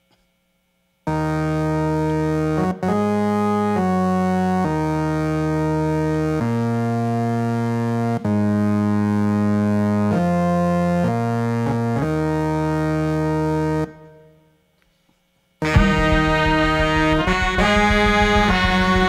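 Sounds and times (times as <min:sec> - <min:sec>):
electric keyboard held chords: 0:01.1 - 0:14.4, 0:15.6 - 0:19.0.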